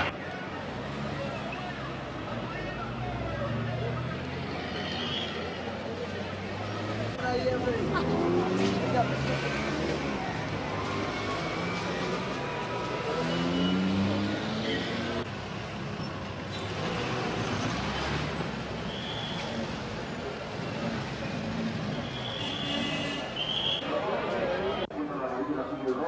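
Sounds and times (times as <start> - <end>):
crowd voices: 0.0 - 18.5, 19.2 - 26.0
cars driving past: 0.0 - 24.8.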